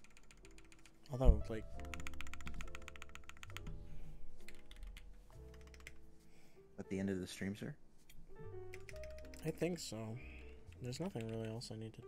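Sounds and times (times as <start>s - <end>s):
mechanical keyboard typing: 0.0s - 1.2s, 1.8s - 3.7s, 4.5s - 6.0s, 8.7s - 9.7s, 10.7s - 11.7s
background music: 0.0s - 12.0s.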